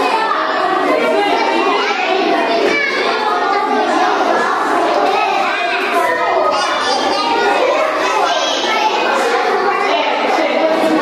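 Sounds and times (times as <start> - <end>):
children chattering excitedly: 0.0 - 11.0.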